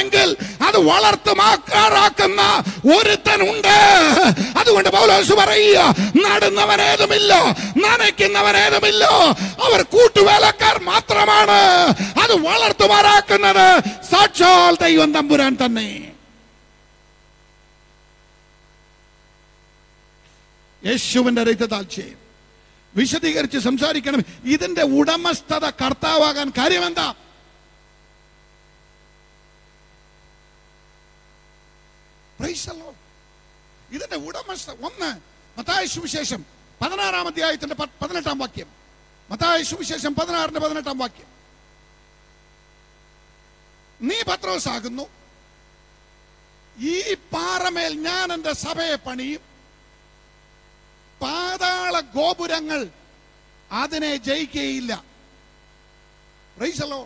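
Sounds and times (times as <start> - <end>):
man speaking through a microphone: 0.0 - 16.2, 20.8 - 22.2, 23.0 - 27.2, 32.4 - 33.0, 33.9 - 38.7, 39.3 - 41.3, 44.0 - 45.2, 46.8 - 49.5, 51.2 - 53.0, 53.7 - 55.1, 56.6 - 57.0
voice over microphone: 0.0 - 16.2
electrical mains hum: 0.0 - 57.0.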